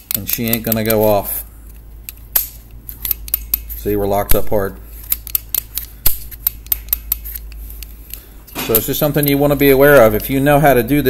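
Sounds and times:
small metal clicks: 0:00.0 - 0:01.0
metal snap: 0:02.1 - 0:03.7.

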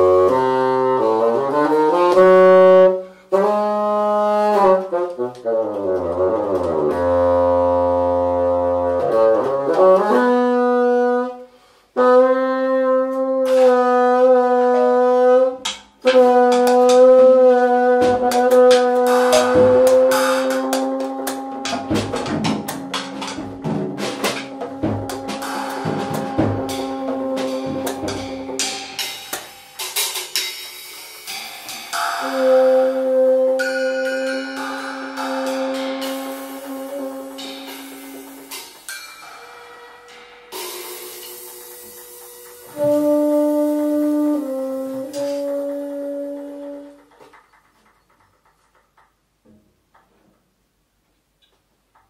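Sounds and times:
bassoon: 0:00.0 - 0:29.4, 0:31.9 - 0:47.1
drums: 0:00.0 - 0:52.0.

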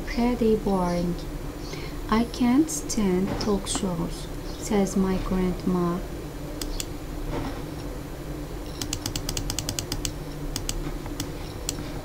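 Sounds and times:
steady low hum: 0:00.0 - 0:12.0
sharp computer clicks: 0:06.6 - 0:06.9, 0:08.7 - 0:11.8.

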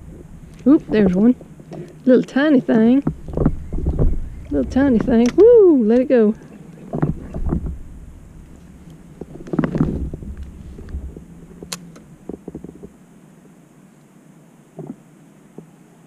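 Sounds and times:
low rumble: 0:00.0 - 0:13.3.

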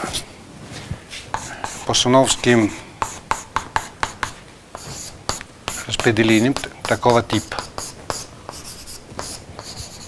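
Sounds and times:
chalk writing on chalkboard: 0:01.3 - 0:10.0.

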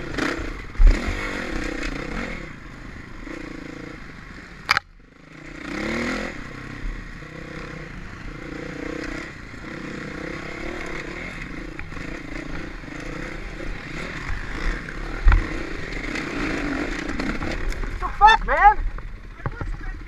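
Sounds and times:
motorcycle engine revving: 0:00.0 - 0:20.0
knocks and clatter from bike: 0:14.0 - 0:18.0, 0:18.8 - 0:20.0.

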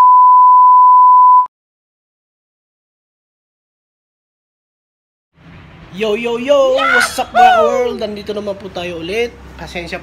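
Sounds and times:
steady test tone beep: 0:00.0 - 0:01.5.

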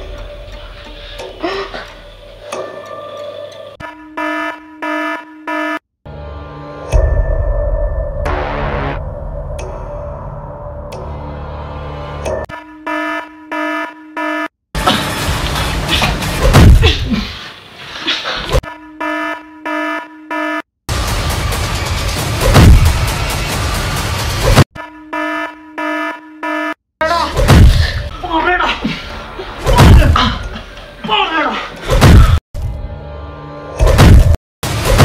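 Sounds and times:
electronic alarm beeps: 0:03.8 - 0:05.8, 0:12.5 - 0:14.5, 0:18.6 - 0:20.7, 0:24.8 - 0:26.8.

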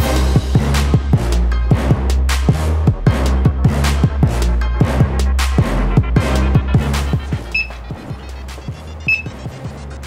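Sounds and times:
music with beat and deep bass: 0:00.6 - 0:10.0
short high beep: 0:07.5 - 0:07.8, 0:09.1 - 0:09.3.

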